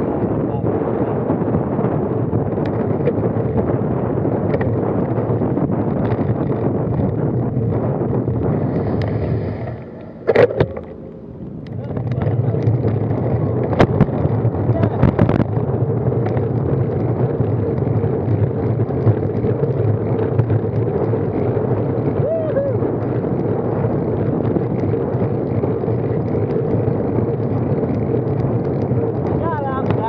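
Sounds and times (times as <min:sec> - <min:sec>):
tyre and road noise: 0:00.0 - 0:30.0
wind rushing over microphone: 0:00.0 - 0:30.0
clicks and knocks: 0:10.0 - 0:14.1.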